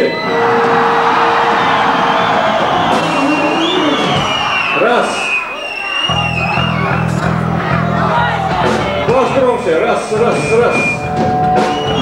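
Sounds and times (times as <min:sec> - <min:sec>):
audience shouts and whoops: 0:00.0 - 0:09.0
live rock band: 0:00.0 - 0:12.0.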